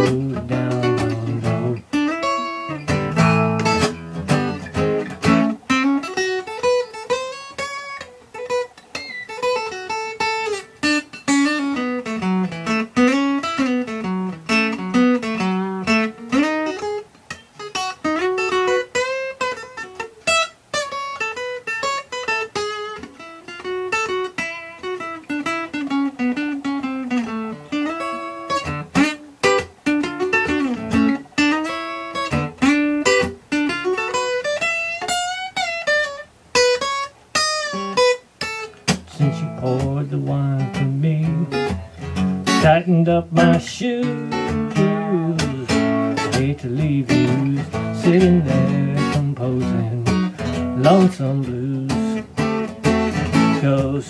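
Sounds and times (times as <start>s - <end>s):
acoustic guitar solo: 0.0s - 54.0s.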